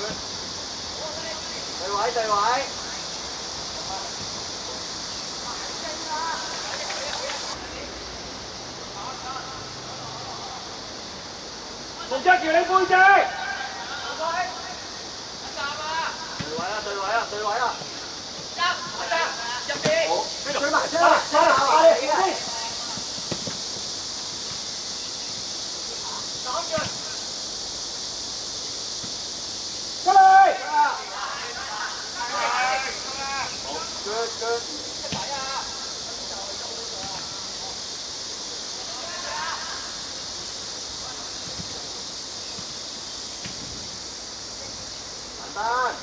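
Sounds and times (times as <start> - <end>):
steady hiss: 0.0 - 46.0
people shouting: 12.0 - 14.8, 18.6 - 23.0, 30.0 - 35.9, 38.8 - 40.0.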